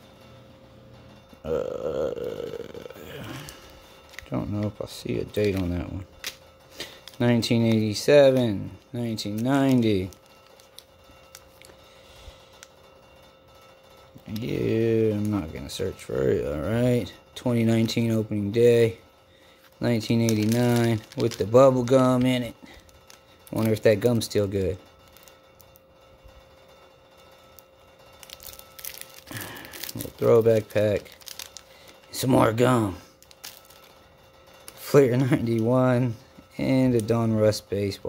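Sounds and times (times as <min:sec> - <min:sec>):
faint steady hum: 0:00.0 - 0:38.0
man speaking: 0:01.5 - 0:03.4, 0:14.3 - 0:19.0, 0:19.8 - 0:22.6, 0:29.9 - 0:31.1
wrapper rustling: 0:01.6 - 0:12.7, 0:14.1 - 0:25.8, 0:28.1 - 0:38.0.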